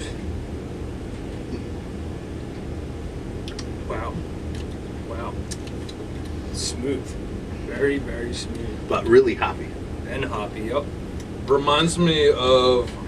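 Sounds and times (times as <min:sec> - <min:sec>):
low room hum: 0:00.0 - 0:13.0
quiet vocal murmurs: 0:06.5 - 0:10.8.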